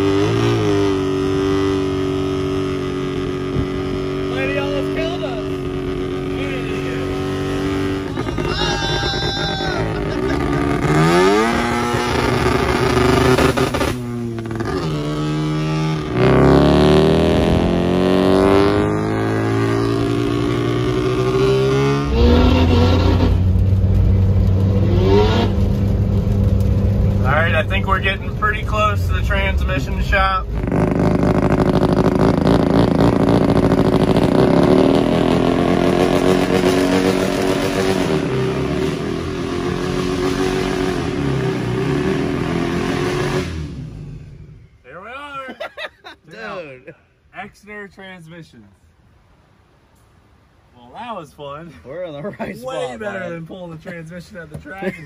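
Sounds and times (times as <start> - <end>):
van engine accelerating: 0.0 - 44.8.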